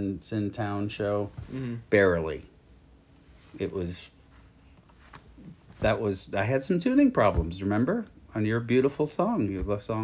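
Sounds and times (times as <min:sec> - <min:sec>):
person speaking: 0:03.4 - 0:04.4.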